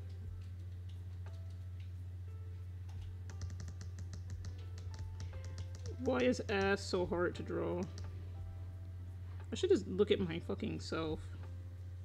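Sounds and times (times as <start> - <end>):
faint background music: 0.0 - 12.0
steady low hum: 0.0 - 12.0
keyboard keys clicking: 2.9 - 6.8.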